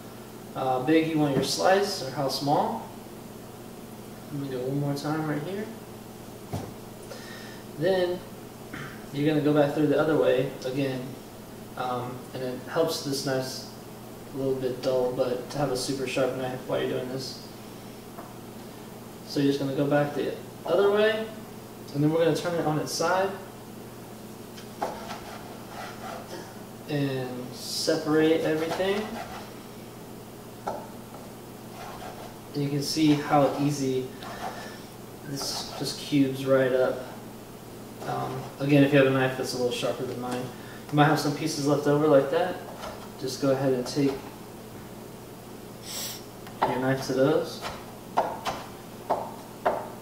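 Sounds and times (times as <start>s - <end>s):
knife chopping on wooden board: 47.6s - 50.0s.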